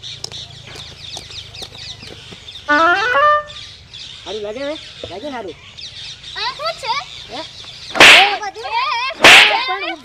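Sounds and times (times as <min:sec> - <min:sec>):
stick striking with whip-like crack: 0:07.9 - 0:08.4, 0:09.2 - 0:09.8.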